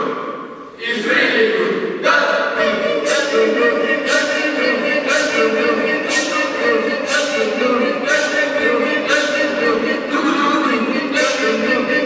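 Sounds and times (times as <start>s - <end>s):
group singing in chorus: 0.8s - 12.0s.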